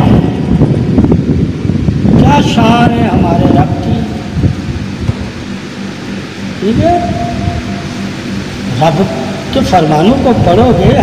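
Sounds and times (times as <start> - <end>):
loud low rumbling: 0.0 - 11.0.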